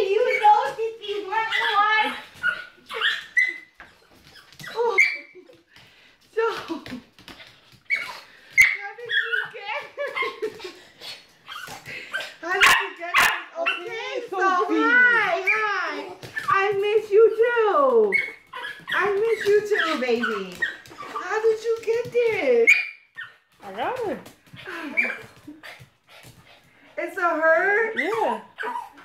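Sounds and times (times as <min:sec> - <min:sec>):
small dog whining: 0:02.4 - 0:05.3, 0:18.1 - 0:20.0.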